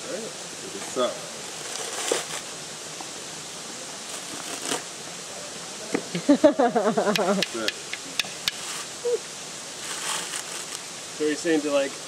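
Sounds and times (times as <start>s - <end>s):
steady background hiss: 0.0s - 12.0s
coconut husk ripping: 4.0s - 4.9s.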